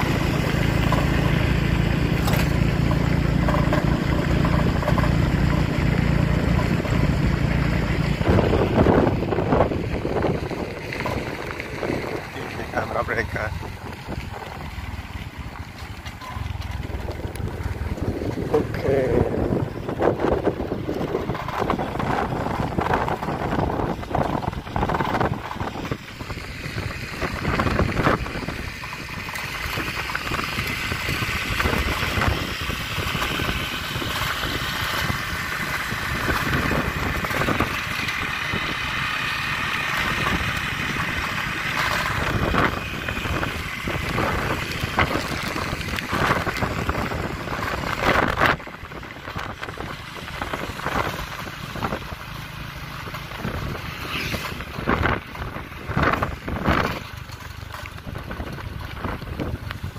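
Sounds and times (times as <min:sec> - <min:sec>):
motorbike engine running: 0:00.0 - 0:59.9
wind buffeting microphone: 0:03.3 - 0:57.3, 0:58.0 - 0:59.9.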